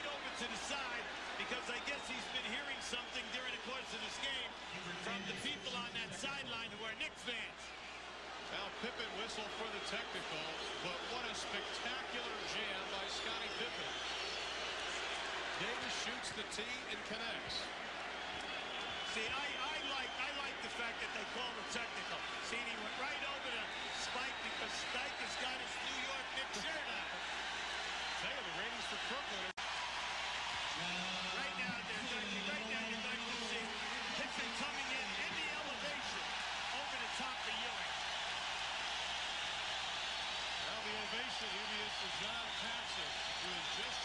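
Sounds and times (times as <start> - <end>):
arena crowd din: 0.0 - 44.0.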